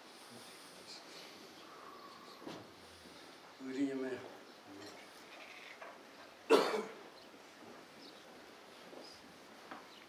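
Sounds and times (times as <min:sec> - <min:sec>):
person coughing: 0:06.5 - 0:07.0.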